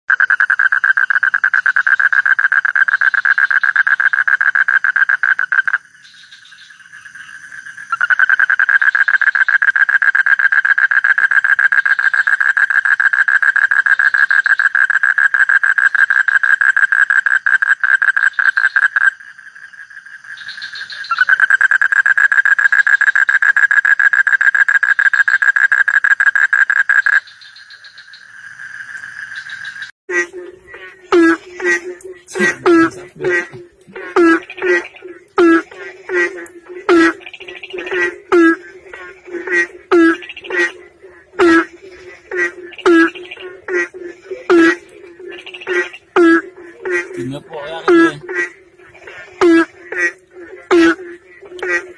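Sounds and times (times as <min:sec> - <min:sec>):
toad pulsed trills: 0:25.2 - 0:51.9.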